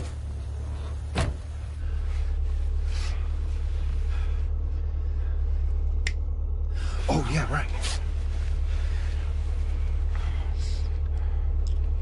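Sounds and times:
car engine idling: 0.0 - 12.0
car door shutting: 0.8 - 1.7.

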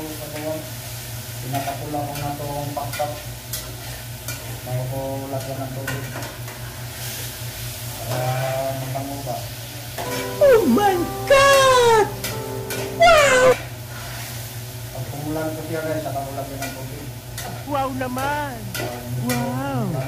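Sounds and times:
chicken sizzling in a pot: 0.0 - 10.5, 11.4 - 17.6.

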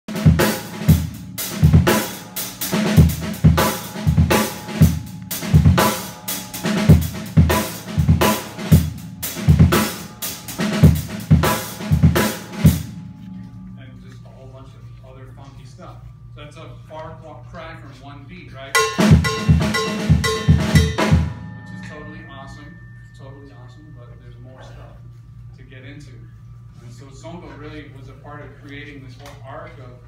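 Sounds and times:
hi-hat and cymbals: 0.1 - 13.1, 18.8 - 23.9
bass drum: 0.1 - 13.3, 18.8 - 22.0.

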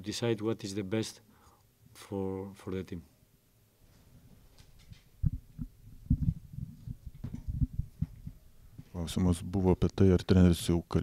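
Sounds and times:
microphone being knocked: 5.2 - 8.9.

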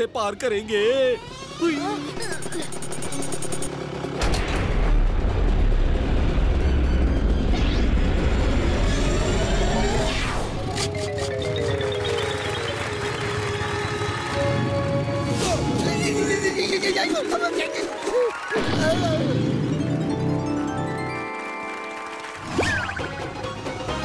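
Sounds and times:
electronic beeps: 2.4 - 3.7, 10.6 - 13.4
background music: 10.1 - 24.0.

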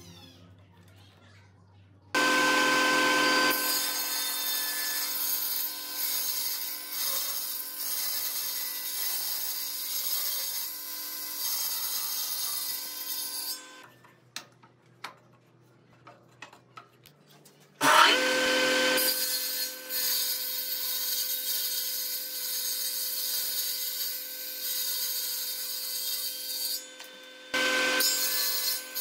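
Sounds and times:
table saw ripping wood: 2.2 - 13.8, 17.8 - 29.0.

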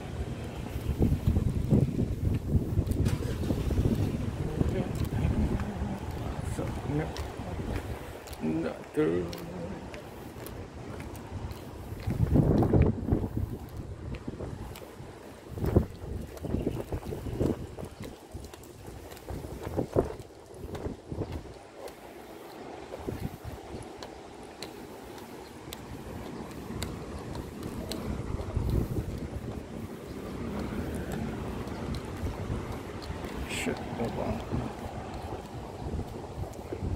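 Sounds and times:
steady outdoor background noise: 0.0 - 36.9
wind buffeting microphone: 0.0 - 36.9.

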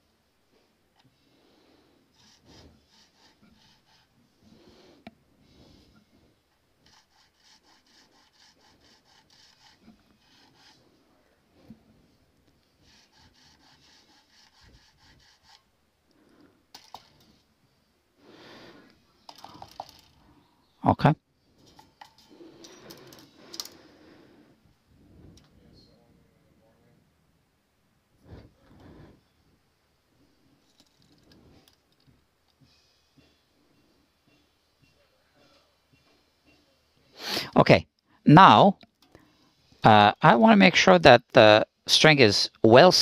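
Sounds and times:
file rasping in guitar nut: 2.2 - 4.2, 6.8 - 10.8, 12.8 - 15.7.

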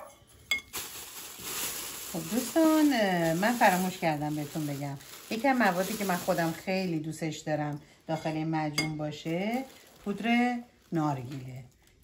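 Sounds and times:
metal spoon clinking glass bowl: 0.0 - 0.7, 8.1 - 9.0
soft rustle: 0.6 - 6.8.

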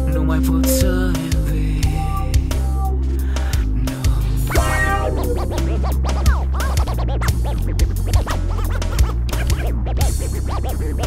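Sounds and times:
rock music: 0.0 - 11.0
turntable scratching: 4.5 - 11.0.

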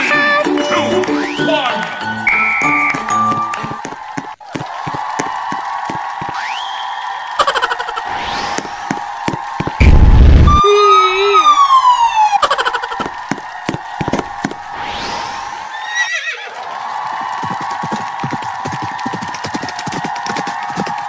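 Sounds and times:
explosion boom: 9.8 - 10.6
rising whistle: 9.8 - 12.4
siren-like high tone: 9.8 - 12.4.

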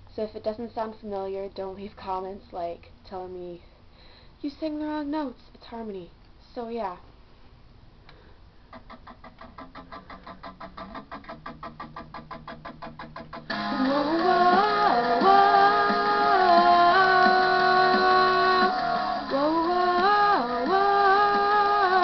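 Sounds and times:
quiet pulsing backing music: 9.6 - 22.0
girl singing long held notes: 13.6 - 22.0.

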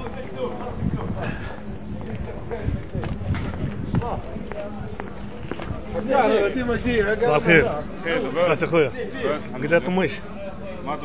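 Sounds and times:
footsteps on paved street: 0.0 - 10.3
faint crowd voices: 0.0 - 11.0.

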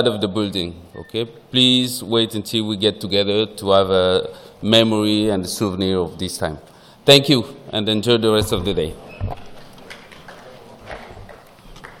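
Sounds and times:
knocks and shuffling of people: 8.3 - 12.0.

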